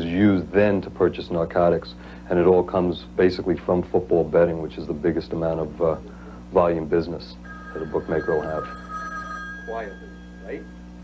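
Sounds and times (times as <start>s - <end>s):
telephone ringing: 7.4s - 11.0s.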